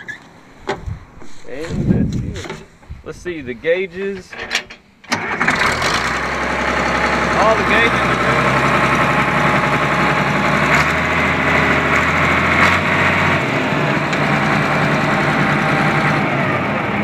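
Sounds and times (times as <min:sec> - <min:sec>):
dozer engine idling: 0:05.1 - 0:17.0.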